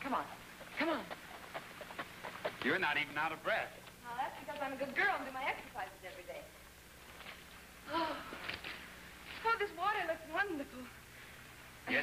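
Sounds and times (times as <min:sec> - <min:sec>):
film soundtrack hum: 0:00.0 - 0:12.0
horse hooves clopping: 0:00.4 - 0:03.4.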